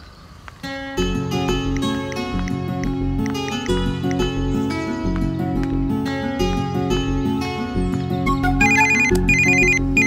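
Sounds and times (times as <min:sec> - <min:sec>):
film music: 0:01.2 - 0:10.0
electronic phone ringtone: 0:08.5 - 0:10.0.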